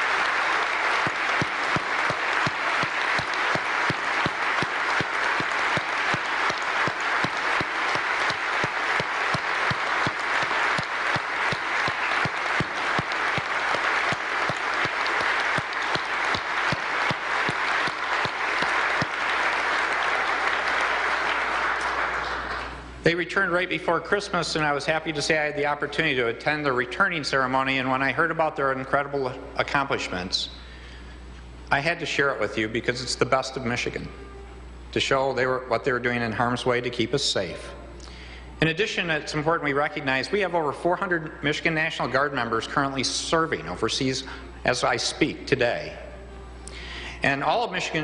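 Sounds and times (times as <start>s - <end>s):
audience applauding: 0.0s - 22.9s.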